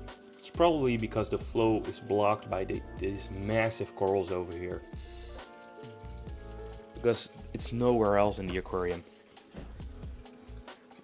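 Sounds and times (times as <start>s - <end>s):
faint background music: 0.0s - 11.0s
water trickling: 0.0s - 11.0s.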